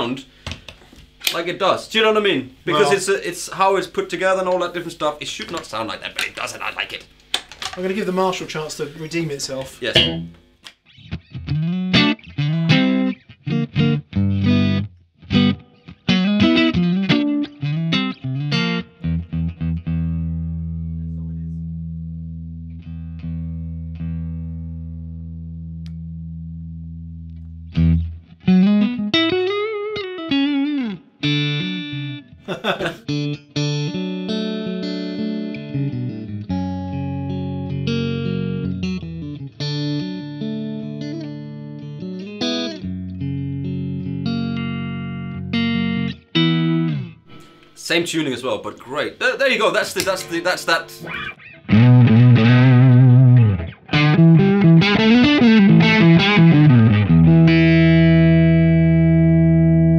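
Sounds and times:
electric guitar chords and licks: 10.0s - 47.8s, 50.0s - 59.9s.

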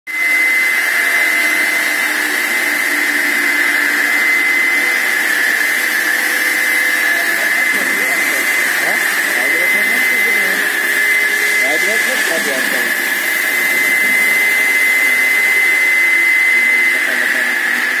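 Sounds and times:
saw blade spinning with high whine: 0.1s - 18.0s.

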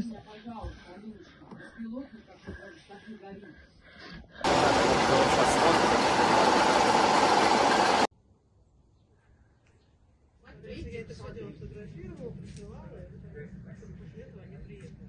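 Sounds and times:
loud steady rushing noise: 4.5s - 8.1s.

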